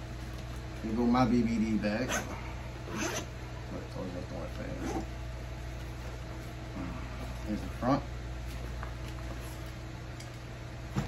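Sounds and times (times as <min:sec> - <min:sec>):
steady low hum: 0:00.0 - 0:11.0
zipper rasps on nylon bag: 0:02.0 - 0:03.3, 0:04.7 - 0:05.1.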